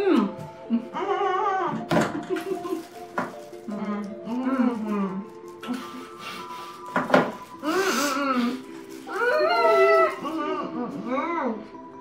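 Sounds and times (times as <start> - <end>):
women humming with closed mouths: 3.7 - 11.7.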